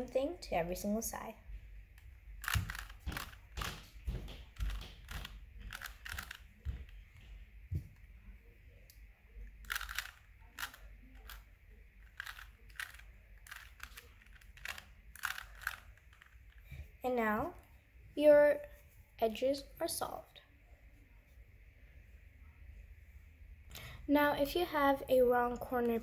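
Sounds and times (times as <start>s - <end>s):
puzzle cube clicking and clacking: 2.4s - 7.0s, 9.6s - 11.4s, 12.0s - 16.7s.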